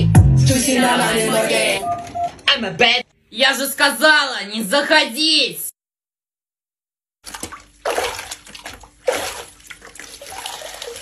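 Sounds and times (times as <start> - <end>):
water sloshing in a bucket: 7.2 - 11.0.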